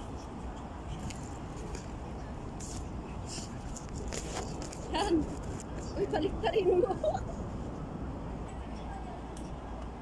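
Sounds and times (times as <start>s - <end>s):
low outdoor rumble: 0.0s - 10.0s
fabric rustling on microphone: 2.6s - 6.2s.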